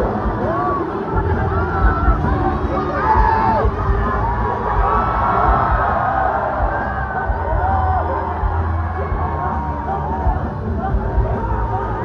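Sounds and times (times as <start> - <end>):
amplified pop music with bass: 0.0 - 12.0
crowd screaming and cheering: 0.0 - 12.0.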